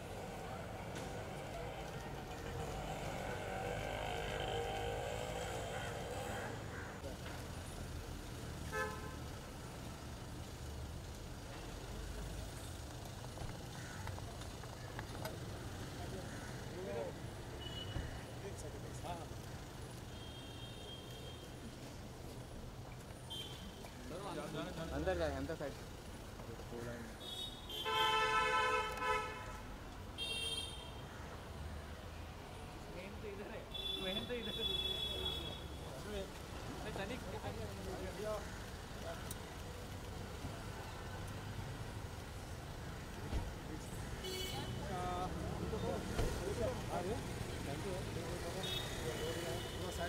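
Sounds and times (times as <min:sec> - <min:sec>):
street traffic rumble: 0:00.0 - 0:50.0
car horn toot: 0:08.7 - 0:09.2, 0:27.4 - 0:29.6.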